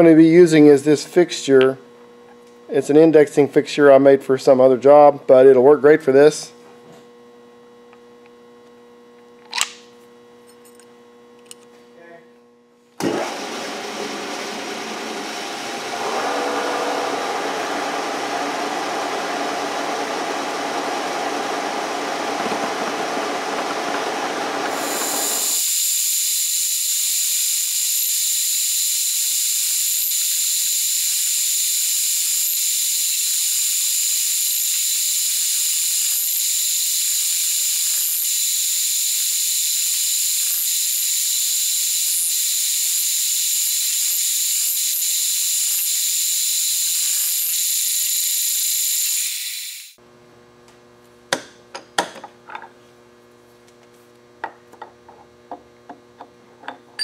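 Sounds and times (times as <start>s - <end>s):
milling machine cutting steel: 14.0s - 50.0s
thin high whine: 24.7s - 50.0s.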